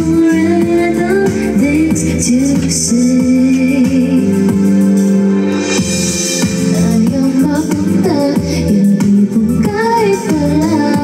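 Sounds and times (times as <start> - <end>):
woman singing into microphone: 0.0 - 4.8, 6.4 - 11.0
backing music: 0.0 - 11.0.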